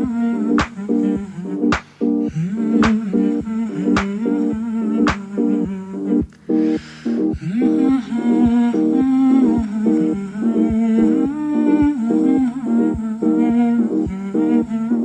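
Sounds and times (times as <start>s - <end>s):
hummed melody: 0.0s - 15.0s.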